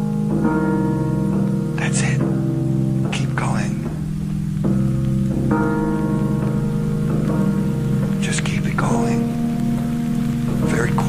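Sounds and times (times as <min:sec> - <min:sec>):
electric piano chords: 0:00.0 - 0:11.0
hissing rain sound effects: 0:00.0 - 0:11.0.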